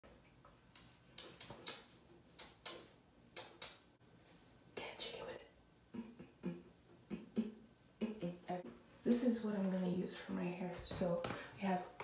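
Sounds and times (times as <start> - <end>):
fingers snapping: 0.7 - 3.9.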